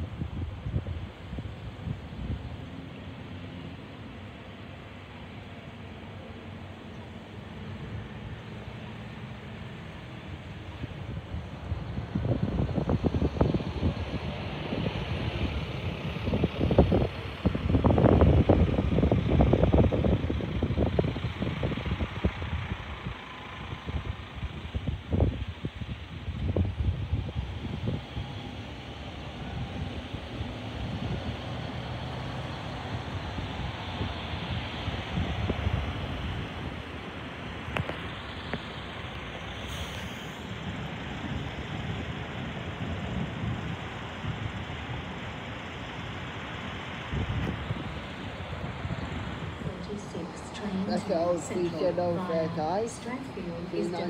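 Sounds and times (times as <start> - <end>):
wind gusts buffeting microphone: 0.0 - 3.4, 9.5 - 39.7, 40.4 - 54.0
background rumble: 33.2 - 54.0.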